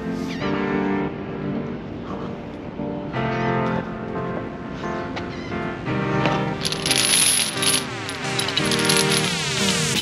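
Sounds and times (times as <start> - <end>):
background music: 0.0 - 10.0
steel chains clinking on pavement: 6.6 - 10.0.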